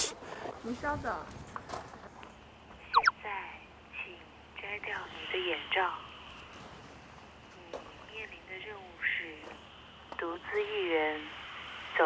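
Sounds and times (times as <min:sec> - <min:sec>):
sharp pitch sweep: 0:02.9 - 0:03.2.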